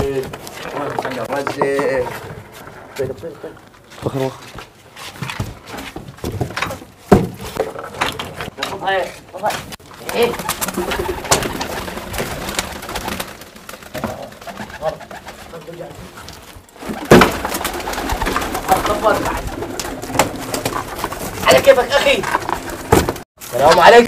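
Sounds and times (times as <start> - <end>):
pigeons cooing: 9.9 - 22.9.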